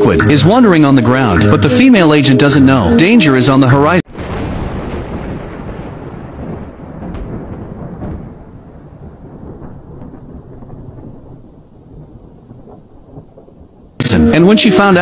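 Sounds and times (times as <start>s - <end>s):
low rolling thunder: 4.1s - 14.0s.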